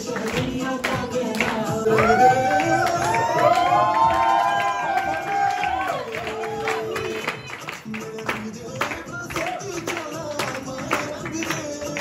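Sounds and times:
bhangra song: 0.0s - 12.0s
crowd cheering and whooping: 1.9s - 7.6s.

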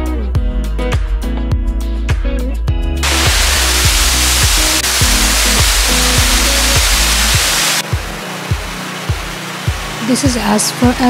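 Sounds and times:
background music with steady beat: 0.0s - 11.0s
river rushing: 3.0s - 10.0s
waterfall roaring: 3.0s - 10.4s.

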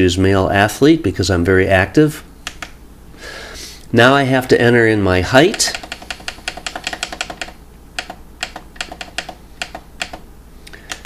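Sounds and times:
scale buttons clicking: 2.4s - 2.8s, 5.4s - 11.0s.

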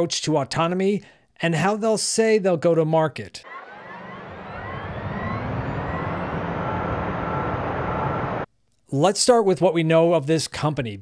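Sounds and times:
car engine accelerating: 3.5s - 8.5s.

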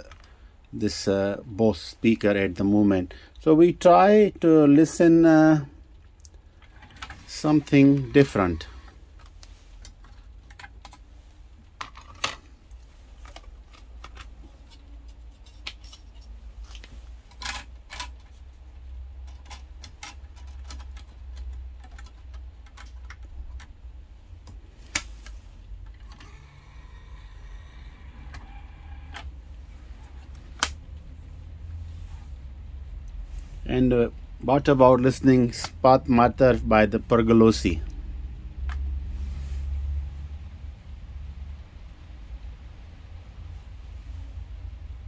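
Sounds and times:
cd drive spinning up: 26.1s - 29.3s.

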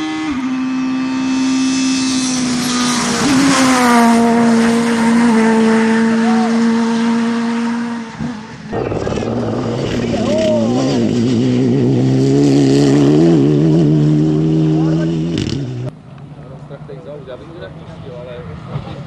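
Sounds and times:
rally car engine at high revs: 0.0s - 15.9s.

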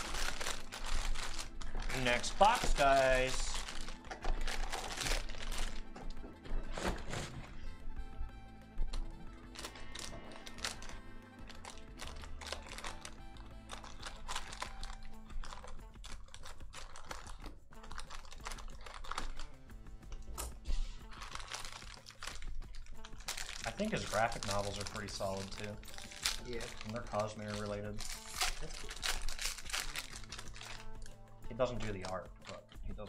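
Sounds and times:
background music: 0.0s - 33.0s
scissors snipping foil: 21.0s - 31.0s.

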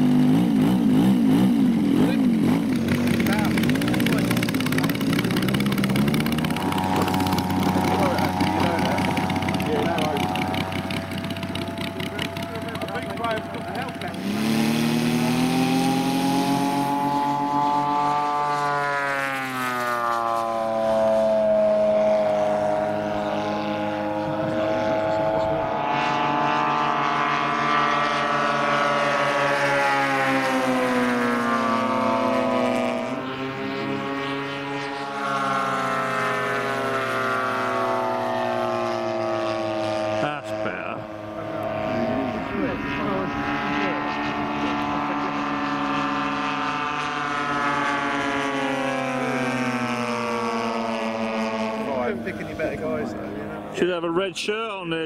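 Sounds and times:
model airplane engines droning: 0.0s - 55.0s.

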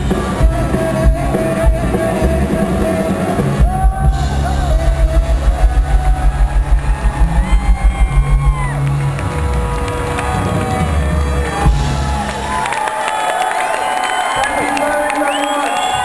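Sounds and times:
live band playing: 0.0s - 15.2s
audience cheering and whooping: 3.6s - 16.0s.

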